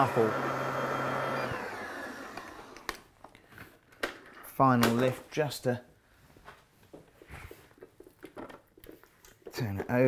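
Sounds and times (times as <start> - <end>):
stand mixer motor winding down: 0.0 - 3.0.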